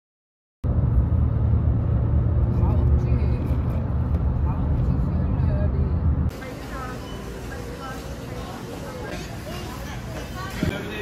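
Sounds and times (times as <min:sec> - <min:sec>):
car road noise rumble: 0:00.6 - 0:07.0.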